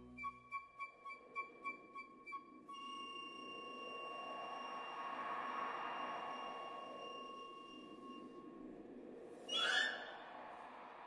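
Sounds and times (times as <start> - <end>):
orchestral music: 0.0 - 0.6.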